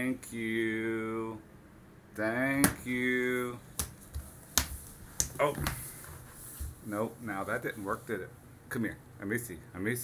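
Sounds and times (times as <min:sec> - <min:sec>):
baby's hands slapping wooden floor: 0:03.7 - 0:05.8.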